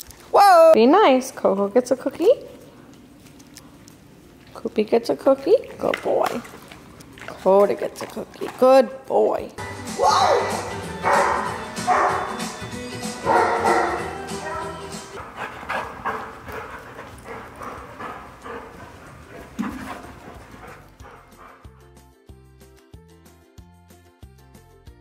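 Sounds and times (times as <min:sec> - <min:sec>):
background music: 0:09.4 - 0:16.2, 0:17.2 - 0:25.0
dog barking: 0:11.0 - 0:12.4, 0:13.2 - 0:14.7.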